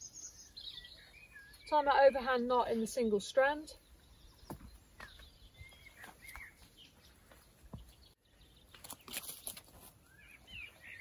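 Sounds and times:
faint birds chirping: 0.0s - 11.0s.

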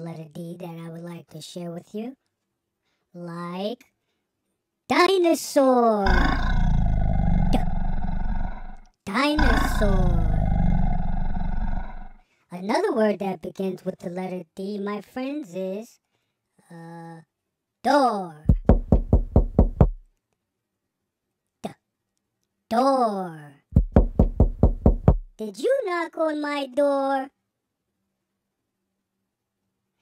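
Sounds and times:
deep rumbling dinosaur roar: 6.0s - 12.2s
knocking on a door: 18.5s - 20.0s, 23.8s - 25.3s.

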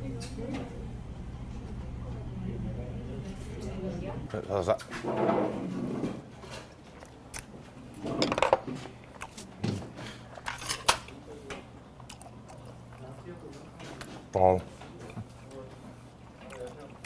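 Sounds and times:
man chewing food: 6.1s - 17.0s.

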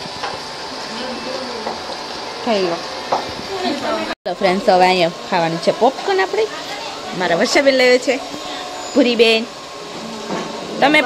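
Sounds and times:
workshop machinery whirring: 0.0s - 11.0s
people talking: 0.9s - 1.8s, 3.5s - 8.3s, 9.0s - 9.5s, 10.8s - 11.0s.

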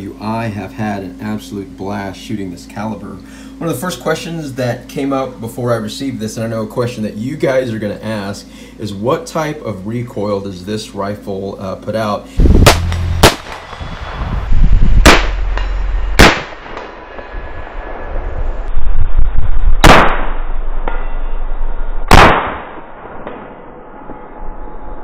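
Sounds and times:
rifle shots: 12.6s - 13.8s, 15.0s - 15.5s, 16.2s - 16.9s, 19.8s - 20.4s, 22.1s - 23.5s.

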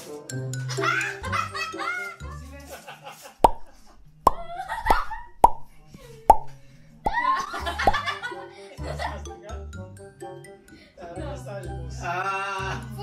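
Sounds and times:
background music: 0.0s - 2.7s, 3.6s - 13.0s
voices and laughter: 0.7s - 3.4s, 7.2s - 9.6s
cartoon pop sound effects: 3.4s - 8.0s.

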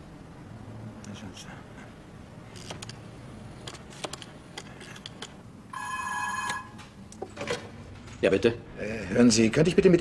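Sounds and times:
telephone ringing: 5.7s - 6.9s.

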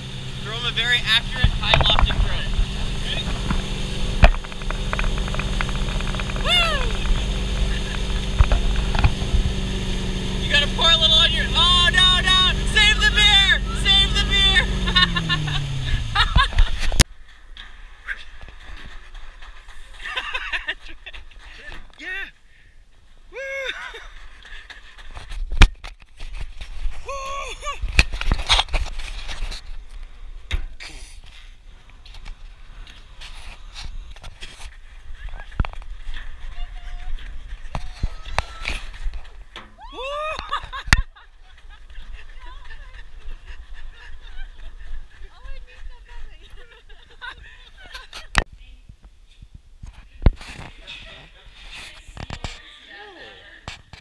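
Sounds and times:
person calling out: 6.4s - 7.0s, 10.7s - 15.2s, 23.4s - 23.8s, 27.1s - 27.8s.

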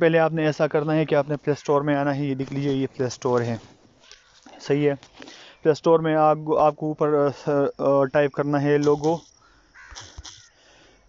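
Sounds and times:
person speaking: 0.0s - 3.7s, 4.5s - 9.2s
bird calling faintly: 0.8s - 5.8s, 8.7s - 10.9s.

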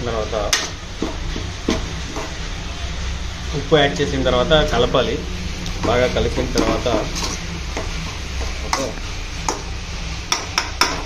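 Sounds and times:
metal ladle scraping a pan: 5.4s - 11.0s.

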